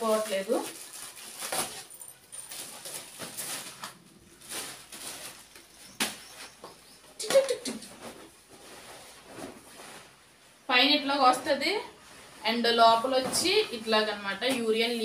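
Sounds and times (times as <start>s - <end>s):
plastic bag crinkling: 0.0s - 6.6s.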